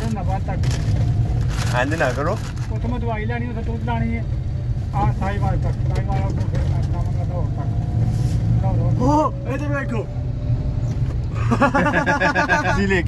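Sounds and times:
road noise inside cabin: 0.0s - 13.0s
vehicle engine rumble: 0.0s - 13.0s.

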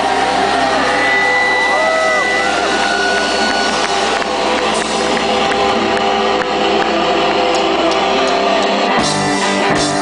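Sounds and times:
distorted electric guitar feedback: 0.0s - 10.0s.

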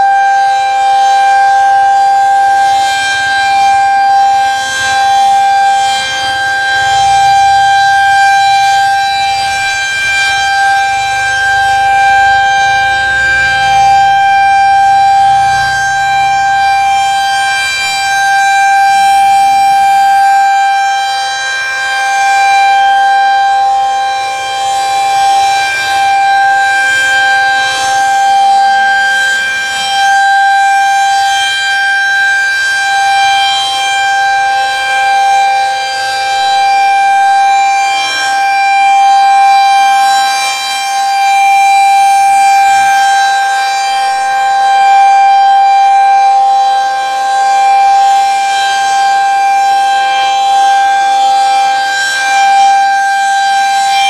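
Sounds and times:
warning siren steady tone: 0.0s - 54.0s.

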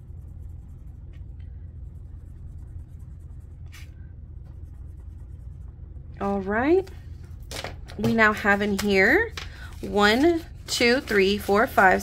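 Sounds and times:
marker pen scribbling on paper: 0.0s - 6.5s
low steady hum: 0.0s - 12.0s.

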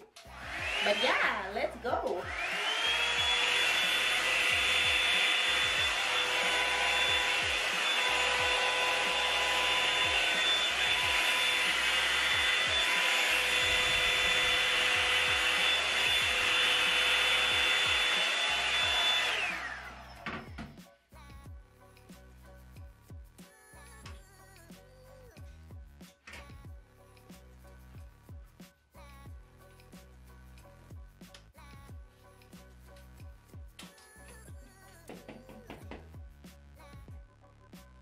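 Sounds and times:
hot-air brush motor whine: 0.2s - 20.6s.

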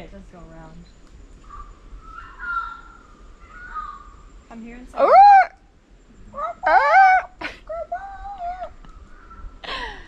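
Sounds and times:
bird calling: 1.4s - 9.6s.

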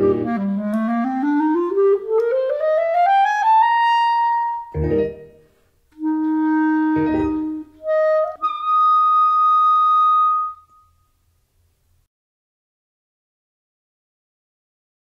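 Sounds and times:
clarinet solo: 0.0s - 5.3s, 6.0s - 11.1s.

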